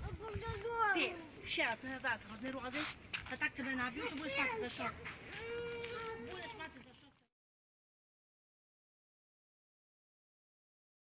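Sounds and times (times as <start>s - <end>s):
outdoor background noise: 0.0s - 7.4s.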